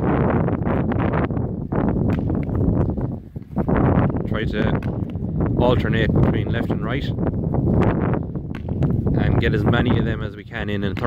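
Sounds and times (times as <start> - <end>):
wind buffeting microphone: 0.0 - 11.0
ball hitting concrete wall: 1.9 - 3.0, 4.6 - 5.4, 7.8 - 9.2
stick striking ball: 2.0 - 3.0, 4.6 - 5.4, 7.8 - 9.1, 10.8 - 11.0.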